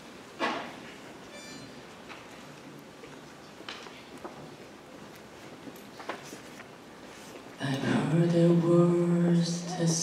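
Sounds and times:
concert hall room noise: 0.0s - 10.0s
faint high-pitched squeak: 1.3s - 1.8s.

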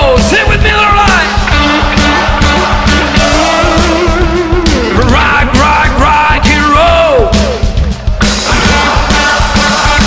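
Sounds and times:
drum hits: 0.0s - 10.0s
hard rock band playing loudly: 0.0s - 10.0s.

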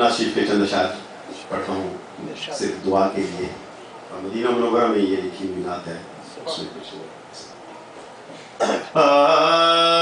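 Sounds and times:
man coughing: 8.5s - 9.0s.

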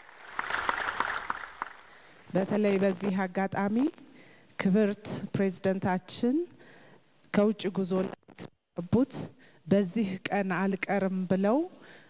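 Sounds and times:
audience applause: 0.0s - 2.1s.

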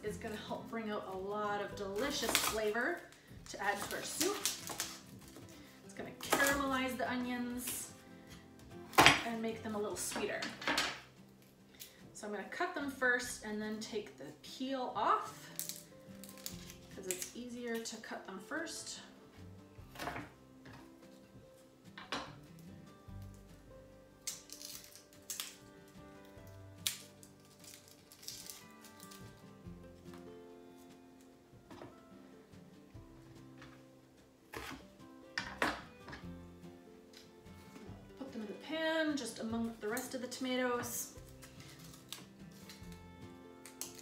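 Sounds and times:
soft instrumental music: 0.0s - 44.0s
knife chopping on wooden board: 34.5s - 34.8s.

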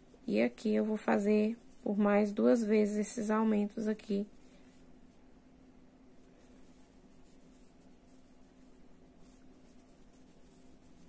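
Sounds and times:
yarn rustling through crochet hook: 0.0s - 5.5s, 6.1s - 11.0s
steady low hum: 0.0s - 11.0s.

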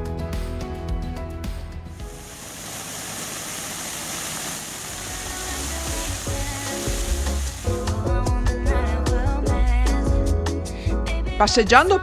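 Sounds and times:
fountain water splashing on paving: 2.0s - 8.1s
background music: 4.9s - 12.0s.

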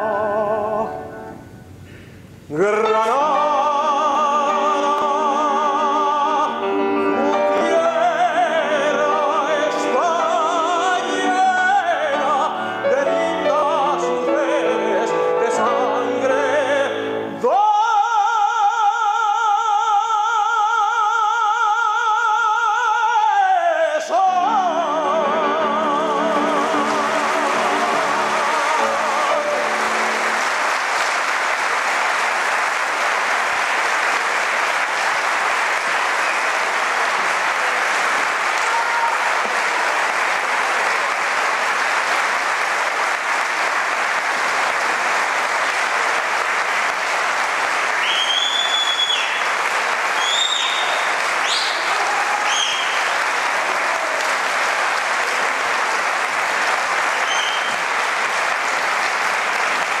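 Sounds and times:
audience applauding: 3.0s - 17.5s, 24.4s - 60.0s.

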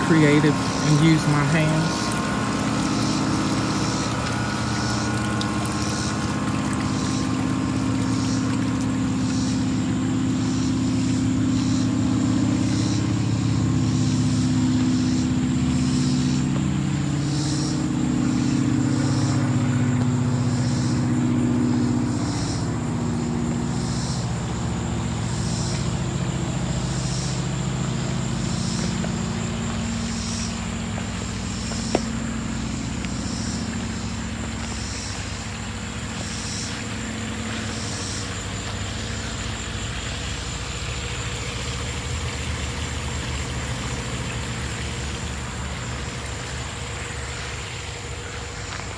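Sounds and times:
motor running steadily: 0.0s - 48.9s.

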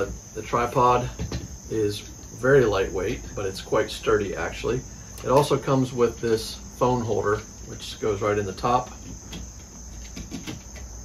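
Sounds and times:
high insect trill: 0.0s - 11.0s.

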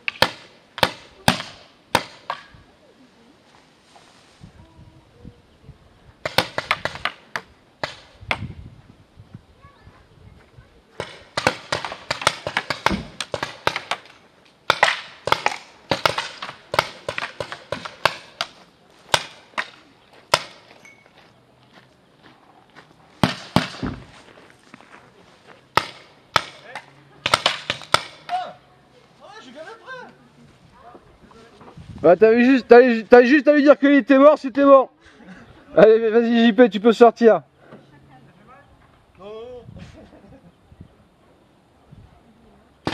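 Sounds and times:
paintball markers firing: 6.2s - 8.4s, 11.0s - 20.7s, 23.2s - 24.0s, 25.7s - 28.4s.

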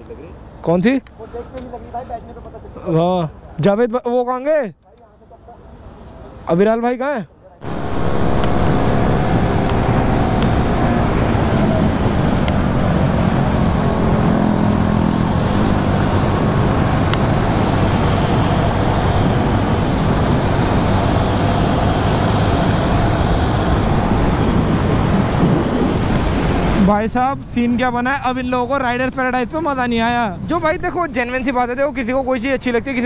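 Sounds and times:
road noise: 0.0s - 33.0s
motorcycle engine running: 7.6s - 26.7s
wind rush on microphone: 7.6s - 31.9s.

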